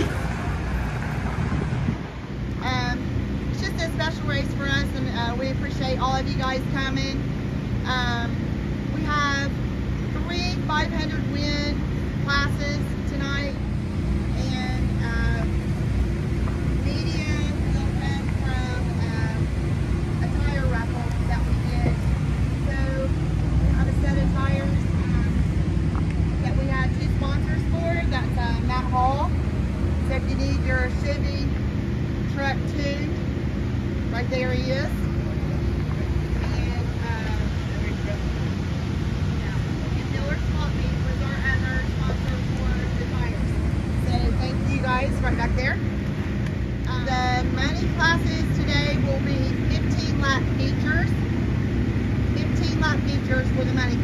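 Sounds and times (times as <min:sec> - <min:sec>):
low engine hum: 0:00.0 - 0:54.0.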